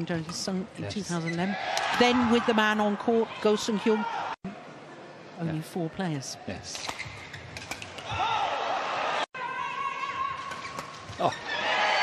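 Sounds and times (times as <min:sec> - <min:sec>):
shoe squeaks: 0:01.0 - 0:01.5, 0:06.8 - 0:07.7
arena crowd noise: 0:01.5 - 0:06.2, 0:08.0 - 0:10.6, 0:11.2 - 0:12.0
racket hitting shuttlecock: 0:06.8 - 0:08.2.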